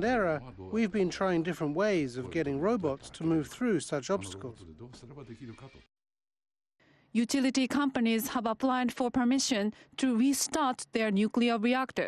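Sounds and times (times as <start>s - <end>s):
man talking: 0.0s - 5.9s.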